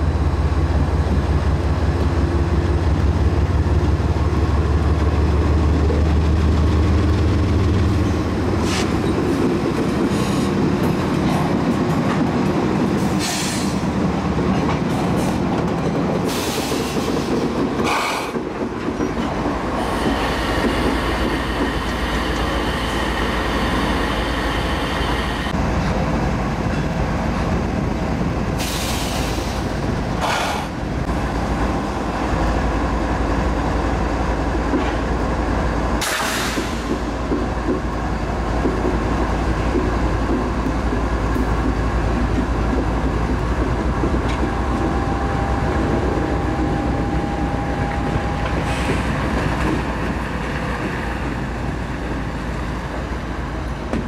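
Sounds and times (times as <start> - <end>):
diesel locomotive engine drone: 0.0 - 54.0
wheels clacking over rail joints: 1.1 - 22.8.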